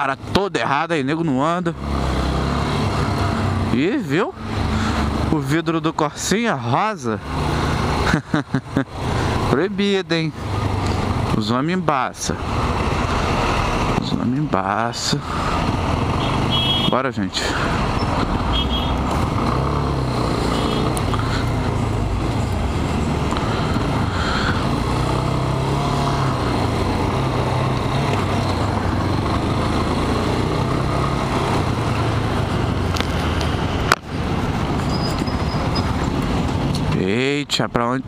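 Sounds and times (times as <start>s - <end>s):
rushing road noise: 0.0s - 38.0s
motorcycle engine running: 17.5s - 36.2s.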